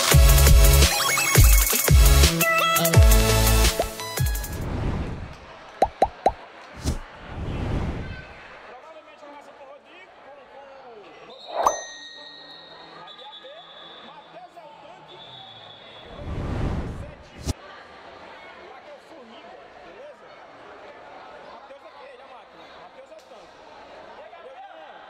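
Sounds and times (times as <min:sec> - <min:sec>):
ball bouncing on court: 0:05.8 - 0:06.4.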